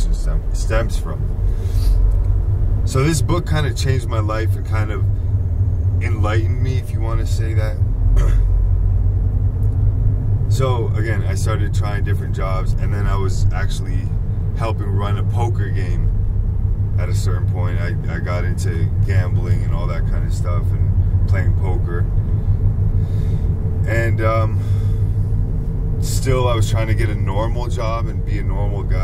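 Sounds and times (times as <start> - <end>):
man talking: 0.0 - 1.3, 2.9 - 5.1, 6.0 - 8.4, 10.5 - 16.1, 17.0 - 22.1, 23.8 - 24.8, 26.0 - 29.0
car engine and road noise: 0.0 - 29.0.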